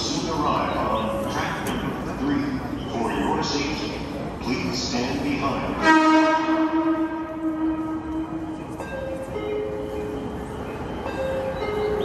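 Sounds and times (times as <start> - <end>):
train horn: 5.8 - 8.7.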